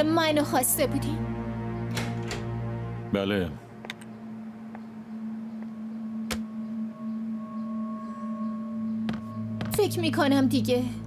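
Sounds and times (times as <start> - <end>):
sustained drone notes: 0.8 - 11.0.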